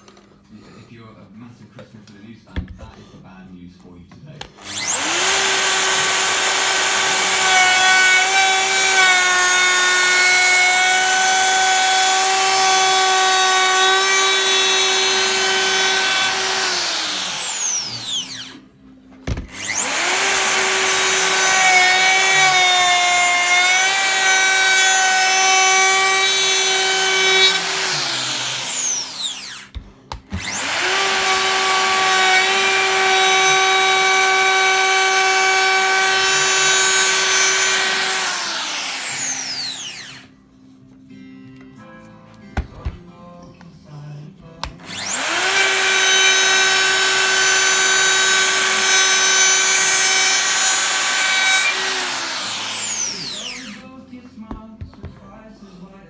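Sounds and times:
router high whine: 0:04.6 - 0:18.6, 0:19.4 - 0:29.7, 0:30.4 - 0:40.2, 0:44.8 - 0:53.8.

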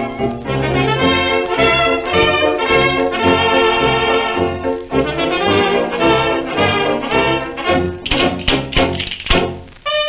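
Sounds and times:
percussion strikes with cymbal ring: 0:08.0 - 0:09.6.

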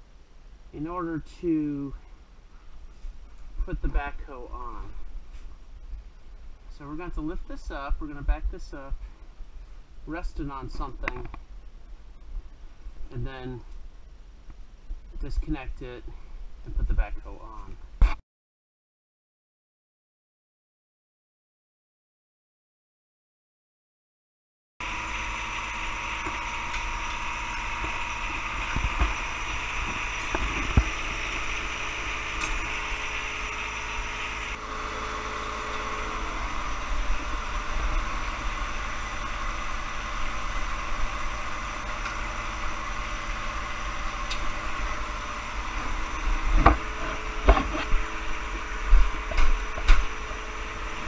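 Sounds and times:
tractor diesel engine idling: 0:24.8 - 0:51.0.

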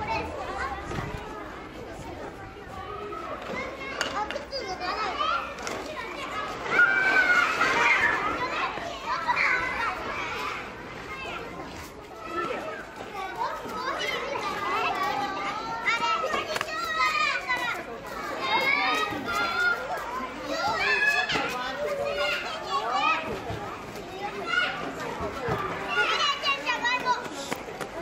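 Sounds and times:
children shouting: 0:02.6 - 0:11.6, 0:12.2 - 0:28.0.

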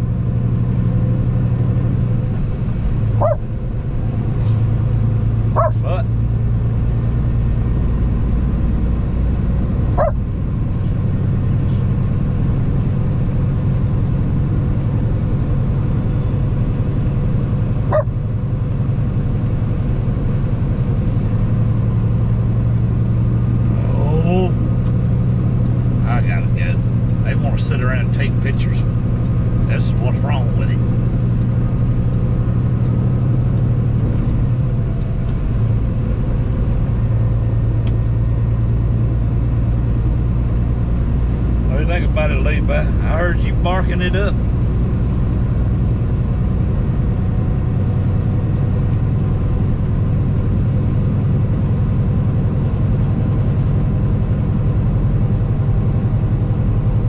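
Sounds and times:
truck engine and tyres droning: 0:00.0 - 0:57.0.

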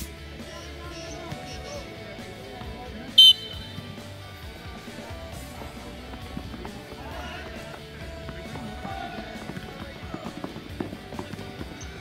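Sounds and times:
background music: 0:00.0 - 0:12.0
shrill whistle blast: 0:03.2 - 0:03.8.

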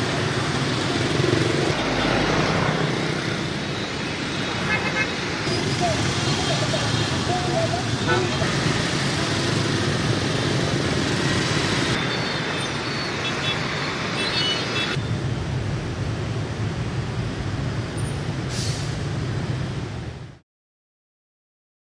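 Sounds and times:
scooter and bus engines rumbling: 0:00.0 - 0:20.2.

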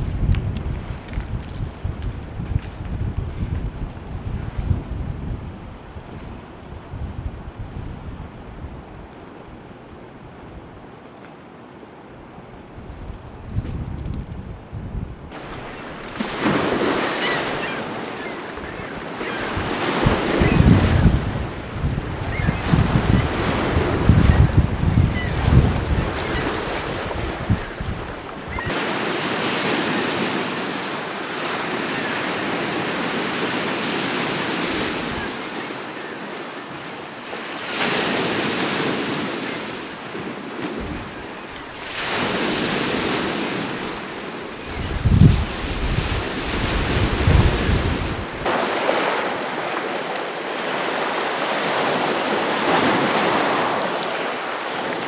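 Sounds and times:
wind buffeting microphone: 0:00.0 - 0:10.8, 0:11.8 - 0:35.7, 0:37.4 - 0:55.0
waves breaking on rocky shore: 0:15.3 - 0:55.0.

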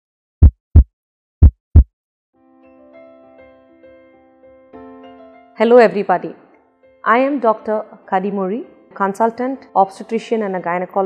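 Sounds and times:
heartbeat thumps: 0:00.4 - 0:01.9.

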